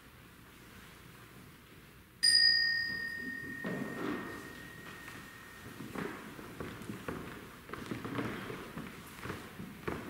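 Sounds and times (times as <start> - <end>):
small bell ringing: 2.2 - 5.8.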